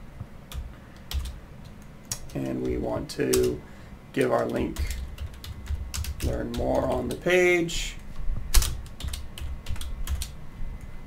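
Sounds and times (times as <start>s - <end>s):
computer keyboard typing: 0.5s - 3.6s, 4.2s - 7.3s, 8.5s - 10.4s.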